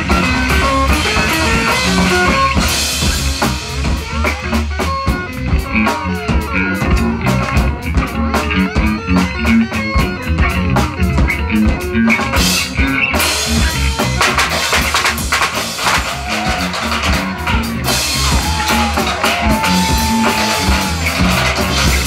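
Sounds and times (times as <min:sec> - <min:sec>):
electric guitar: 0:00.0 - 0:22.0
pounding drum kit: 0:00.0 - 0:22.0
rock band playing live: 0:00.0 - 0:22.0.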